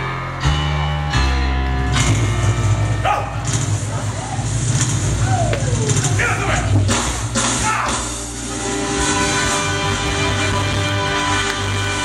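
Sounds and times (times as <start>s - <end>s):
rumbling drum roll: 2.1s - 10.8s.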